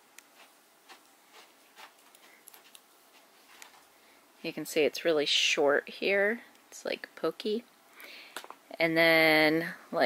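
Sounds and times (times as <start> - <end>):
fingers parting wig fibres: 0.0 - 4.0.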